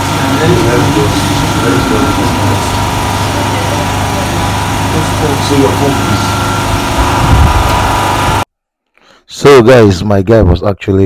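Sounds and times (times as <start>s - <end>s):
indistinct voices: 0.0s - 7.0s
petrol generator running: 0.0s - 8.5s.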